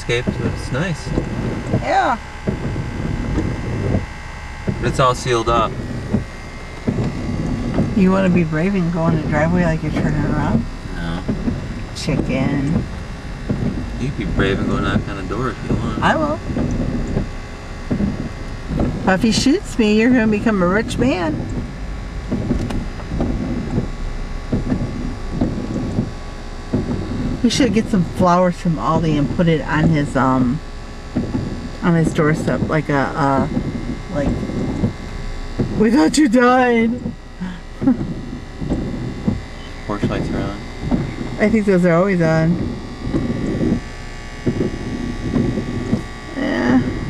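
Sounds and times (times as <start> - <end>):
car engine idling: 0.0 - 47.0.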